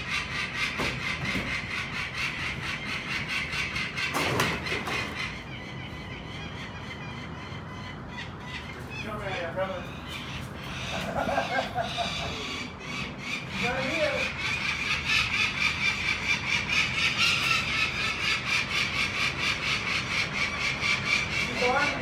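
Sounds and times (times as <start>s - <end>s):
falcon harsh alarm calls: 0.0s - 22.0s.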